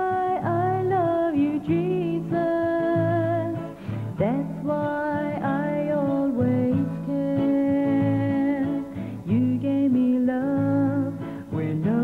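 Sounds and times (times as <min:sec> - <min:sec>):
plucked guitar: 0:00.0 - 0:12.0.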